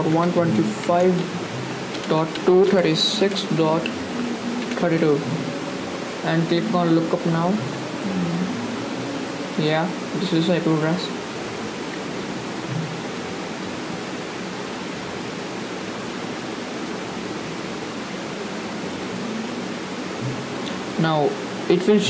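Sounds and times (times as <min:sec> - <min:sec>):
microphone hiss: 0:00.0 - 0:22.0.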